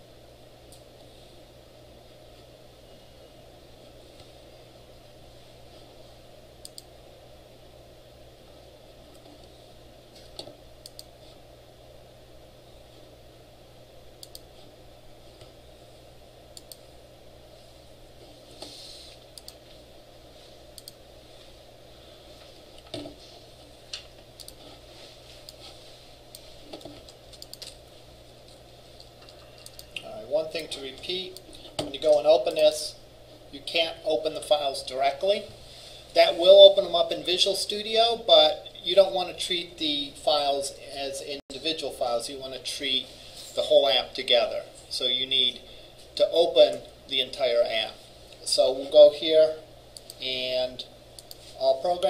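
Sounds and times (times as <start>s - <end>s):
low room hum: 0.0s - 52.0s
computer mouse clicks: 6.6s - 6.9s, 10.2s - 11.1s, 14.2s - 14.5s, 16.6s - 16.8s, 18.6s - 19.6s, 20.7s - 21.0s, 23.9s - 24.8s, 26.3s - 27.8s, 29.0s - 30.7s, 50.0s - 50.2s, 51.2s - 51.5s.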